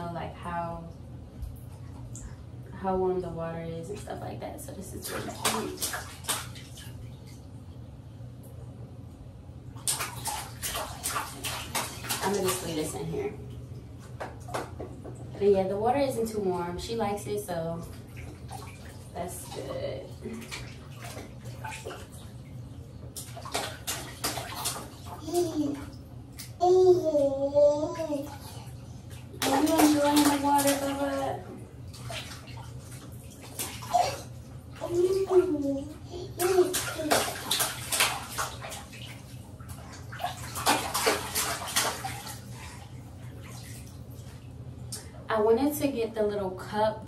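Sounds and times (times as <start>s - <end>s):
bath water splashing: 3.8s - 8.5s, 9.6s - 45.9s.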